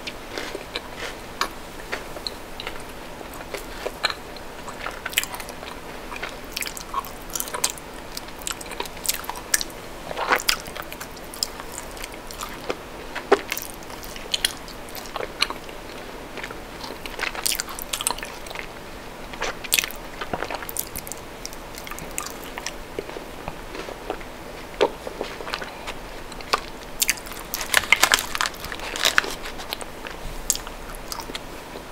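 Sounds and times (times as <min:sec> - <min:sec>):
chewing chocolate: 0:00.3 - 0:18.7, 0:19.3 - 0:31.4.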